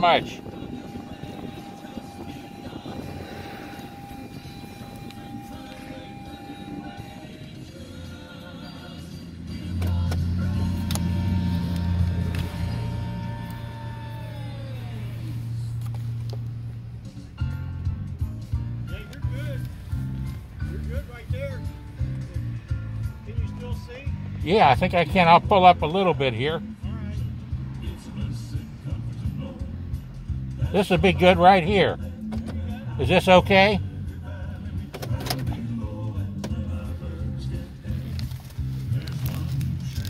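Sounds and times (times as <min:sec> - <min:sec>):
pulsing bass rhythm: 0:00.0 - 0:34.9
music through car speakers: 0:00.0 - 0:40.0.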